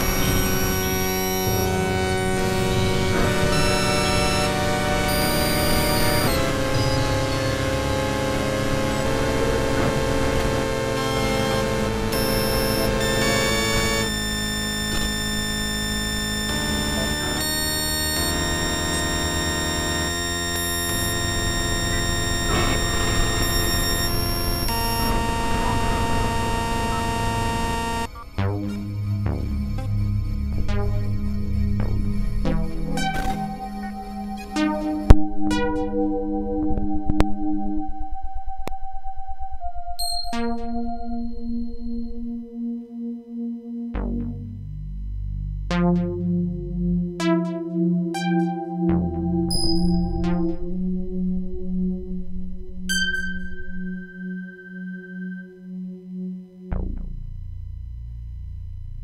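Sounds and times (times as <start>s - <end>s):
experimental electronic music: 0.0s - 59.0s.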